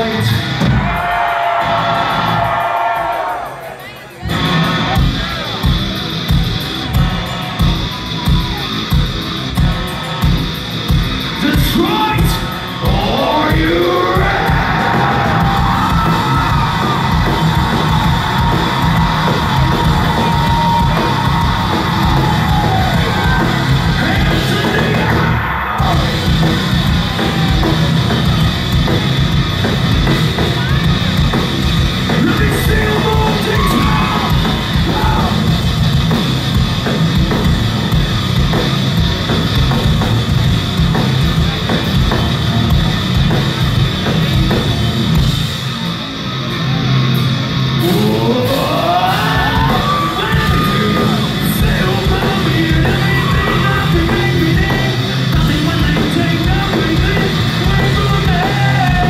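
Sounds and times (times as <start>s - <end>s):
heavy rock band playing live: 0.0s - 59.0s.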